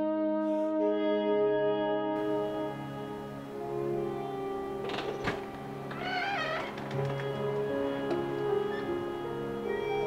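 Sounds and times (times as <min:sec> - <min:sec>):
soft background music: 0:00.0 - 0:10.0
door hinges squeaking: 0:02.3 - 0:10.0
door latch clicking: 0:04.8 - 0:09.0.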